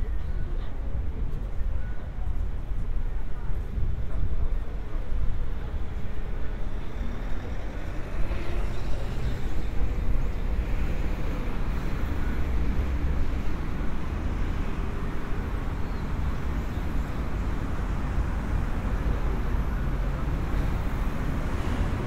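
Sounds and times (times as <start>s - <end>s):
road traffic driving past: 6.8s - 22.0s.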